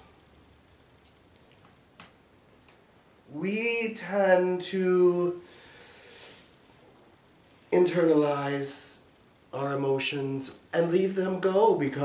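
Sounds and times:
faint irregular clicks: 1.0 - 2.8.

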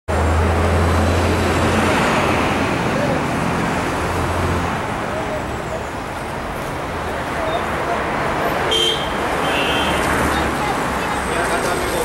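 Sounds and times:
street traffic noise: 0.1 - 12.0.

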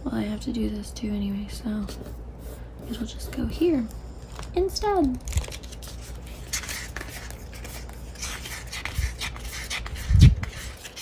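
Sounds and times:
paper sheets rustling: 5.0 - 11.0.

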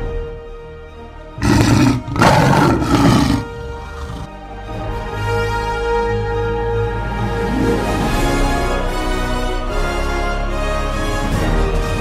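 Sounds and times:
background music: 0.0 - 12.0
big cat roaring: 1.4 - 4.3.

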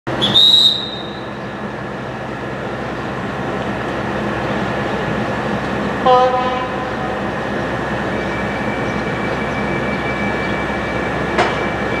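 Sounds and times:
train equipment humming: 0.1 - 12.0
high clear whistle: 0.2 - 1.3.

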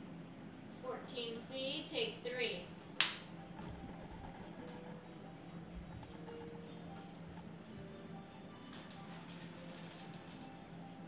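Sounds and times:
faint steady hum: 0.0 - 11.0
slate clap: 3.0 - 3.4.

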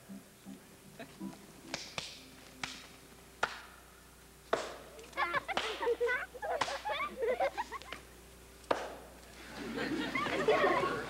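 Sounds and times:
sharp slap or clap: 1.7 - 3.8, 4.5 - 4.9, 5.5 - 5.9, 6.6 - 6.9, 7.9 - 9.1.

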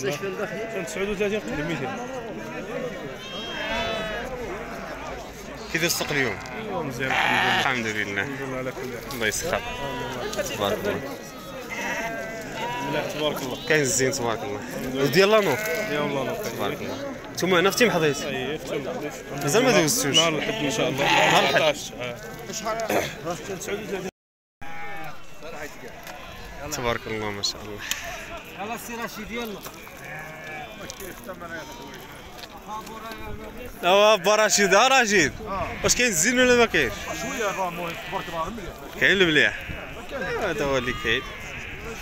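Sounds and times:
sheep bleating: 0.0 - 2.1, 3.0 - 17.0, 19.6 - 22.9, 24.6 - 32.5, 35.5 - 42.0
people's voices: 0.0 - 24.1, 24.7 - 42.0
crowd chatter: 0.0 - 42.0.

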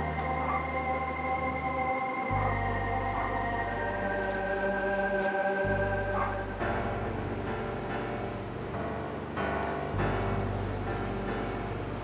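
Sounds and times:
sustained layered drama music: 0.0 - 12.0.

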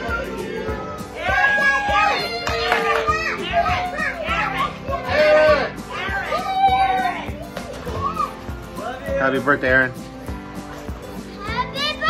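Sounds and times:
group of voices shouting: 0.0 - 7.4
background music: 0.0 - 12.0.

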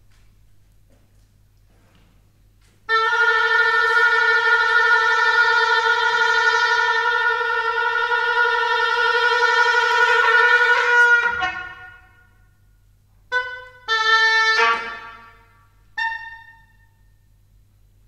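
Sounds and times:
oboe playing: 2.9 - 12.5, 13.3 - 17.0.

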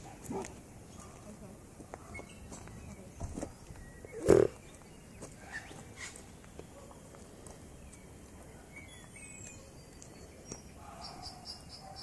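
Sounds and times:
koala grunt: 4.1 - 4.6.

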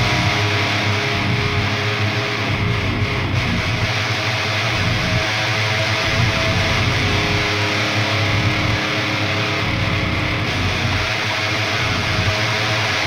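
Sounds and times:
bass guitar: 0.0 - 13.0
electric guitars: 0.0 - 13.0.

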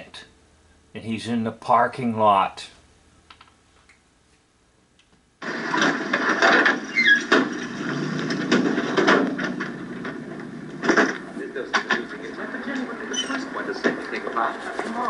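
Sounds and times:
scattered knocks: 5.4 - 12.9
noisy television scene: 5.4 - 15.0.

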